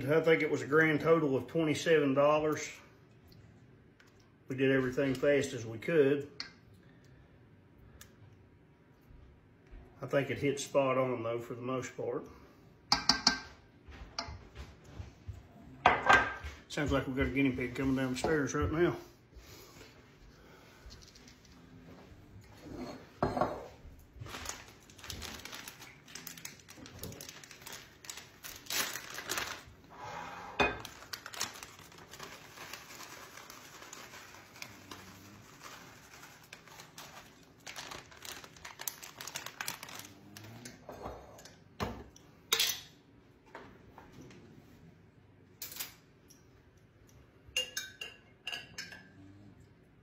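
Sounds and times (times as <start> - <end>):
plastic bag crinkling: 24.1 - 29.9, 30.8 - 40.6
dishes and utensils clinking: 47.5 - 49.2.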